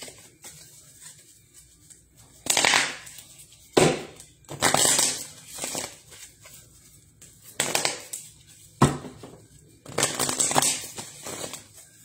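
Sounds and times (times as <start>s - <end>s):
crackling rustles of handling: 0.0s - 2.4s.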